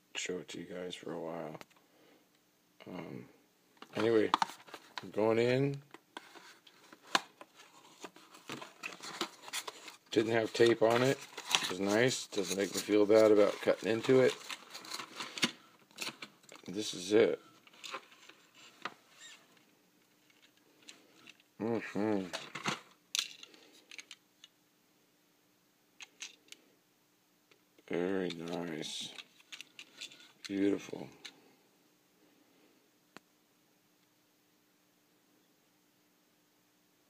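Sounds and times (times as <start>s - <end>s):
cardboard scratching and rustling: 6.2s - 15.4s.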